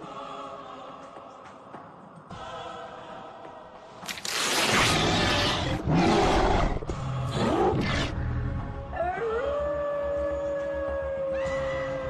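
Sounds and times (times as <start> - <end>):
music: 0.0 - 12.0
animal roars: 4.7 - 8.2.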